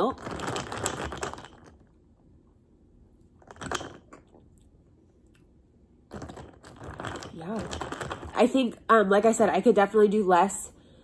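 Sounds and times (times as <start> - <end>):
straw stirring drink in glass jar: 0.1 - 1.8, 6.1 - 8.4.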